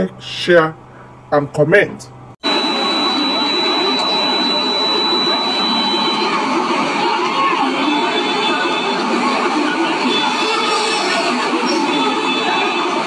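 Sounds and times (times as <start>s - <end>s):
crowd of overlapping voices: 2.4s - 13.0s
steady high tone: 2.4s - 13.0s.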